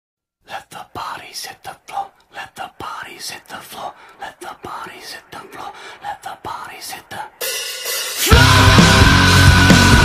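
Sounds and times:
voices whispering: 0.5s - 7.4s.

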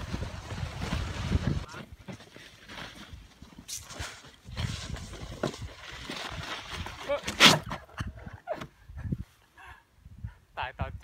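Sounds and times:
wind rumbling on microphone: 0.0s - 1.8s, 7.6s - 9.3s
snowboard scraping over snow: 0.0s - 7.6s.

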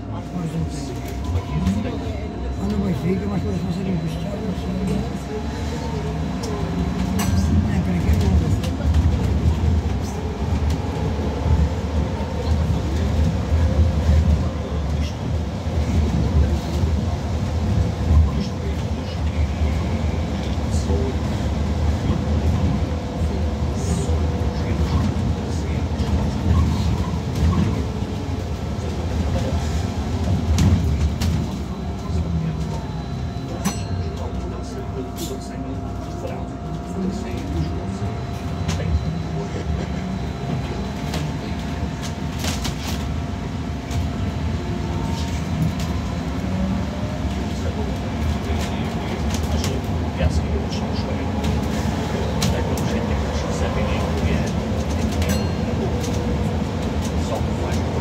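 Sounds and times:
low road rumble inside bus: 0.0s - 58.0s.

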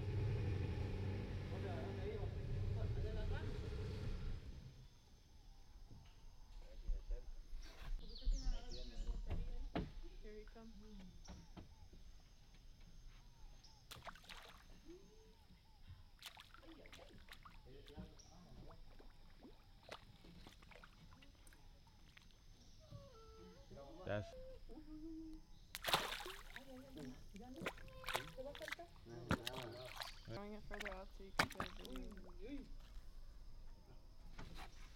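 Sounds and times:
water splashing against boat: 16.0s - 22.8s, 25.7s - 32.9s.

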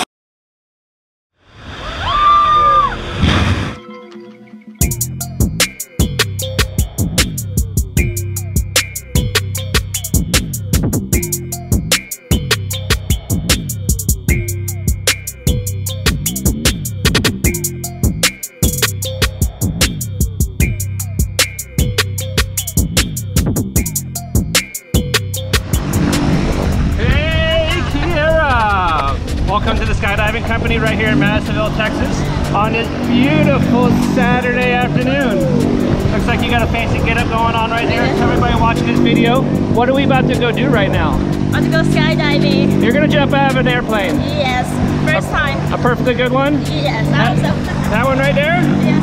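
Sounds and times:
whoosh of noise: 1.4s - 3.9s, 25.6s - 41.8s
outdoor noise: 1.4s - 30.5s
whistling tone bending upward: 1.8s - 5.0s
intro music with drum-machine beat: 3.8s - 31.4s, 32.5s - 49.0s
steady engine-like drone: 25.2s - 49.0s.

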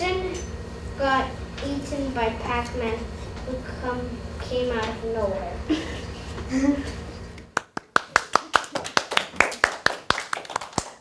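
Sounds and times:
people clapping: 7.5s - 11.0s.

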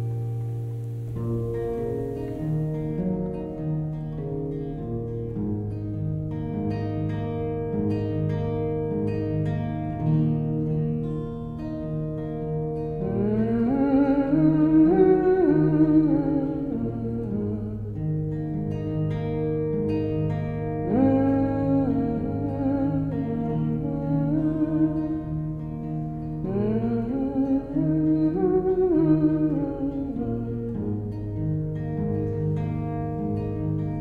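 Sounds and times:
acoustic guitar: 0.0s - 34.0s
woman humming: 13.0s - 17.9s, 20.9s - 25.4s, 26.4s - 31.0s.

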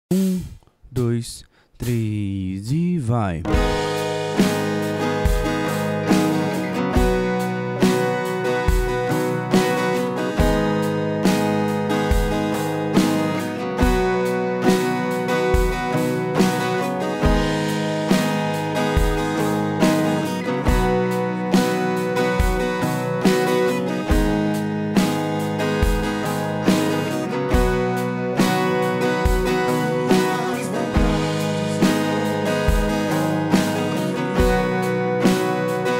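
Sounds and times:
acoustic guitar strumming chords: 0.1s - 35.9s.

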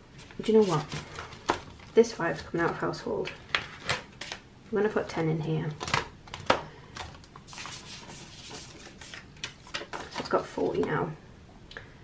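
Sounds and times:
banknotes rustling and crinkling: 0.2s - 4.4s, 5.8s - 11.0s.

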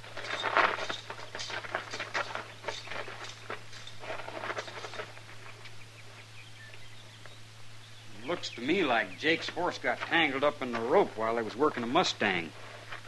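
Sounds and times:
footsteps shuffling on dirt: 0.0s - 13.0s
low recording hum: 0.0s - 13.0s.

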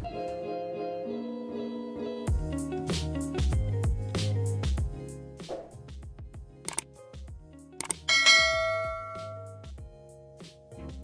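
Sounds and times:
soft background music: 0.0s - 11.0s
short clicks: 6.7s - 6.9s, 7.8s - 8.1s
bright bell ding: 8.1s - 9.6s.

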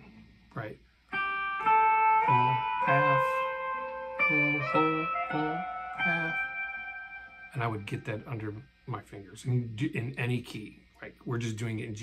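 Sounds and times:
electric guitar single notes: 1.1s - 8.7s.

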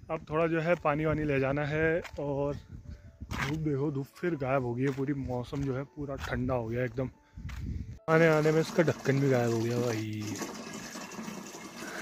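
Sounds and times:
water splashing into a jerrycan: 8.1s - 12.0s.

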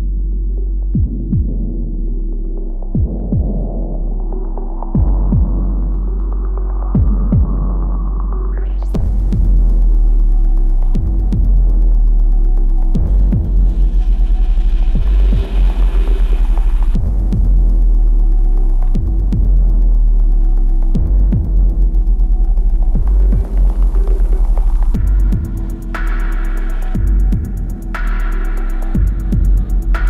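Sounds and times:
droning electronic music: 0.0s - 30.0s
deep bass hits: 0.9s - 2.2s, 2.9s - 8.2s, 8.9s - 30.0s.

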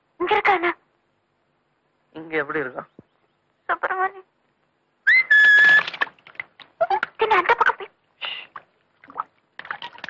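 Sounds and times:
loud shrill whistle: 5.1s - 5.8s.

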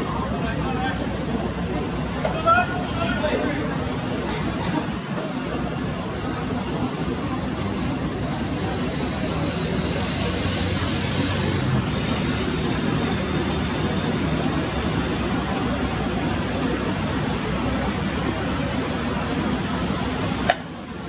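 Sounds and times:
constant low hum: 0.0s - 21.0s
faint indistinct voices: 0.0s - 21.0s.

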